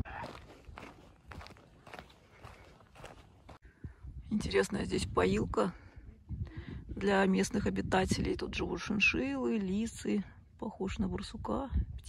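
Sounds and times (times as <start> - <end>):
footsteps crunching on dirt trail: 0.0 - 3.6.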